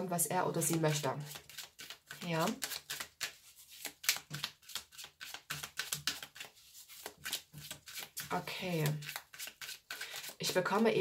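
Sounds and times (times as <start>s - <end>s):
cards being shuffled: 0.6s - 10.6s.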